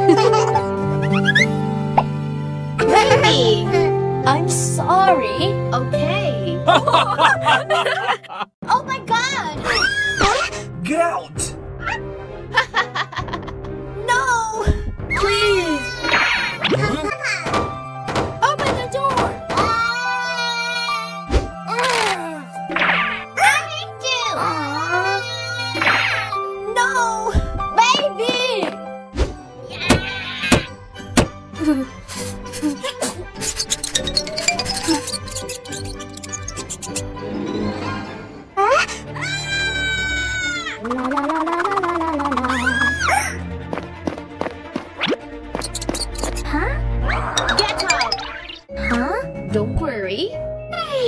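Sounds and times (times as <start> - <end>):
light background music: 0.0 - 40.8, 42.2 - 51.0
child crying and sobbing: 15.2 - 16.2, 19.6 - 22.6, 24.1 - 27.3
quiet background music: 42.3 - 51.0.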